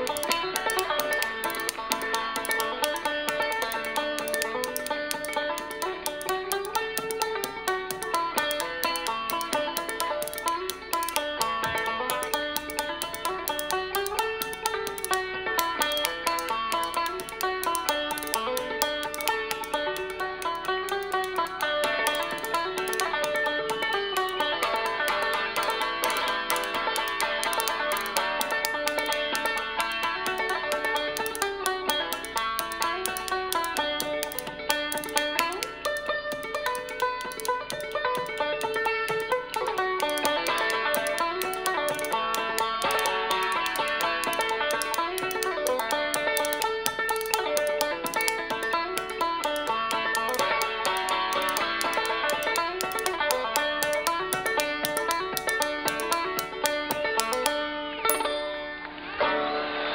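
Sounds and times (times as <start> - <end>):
fast banjo playing: 0.0 - 57.6
spoons clacking: 0.0 - 58.6.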